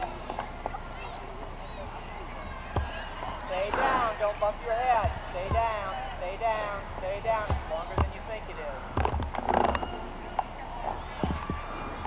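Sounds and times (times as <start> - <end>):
people talking indistinctly: 0.0 - 12.0
dull thumps: 5.0 - 5.9, 7.3 - 8.2, 9.0 - 9.9.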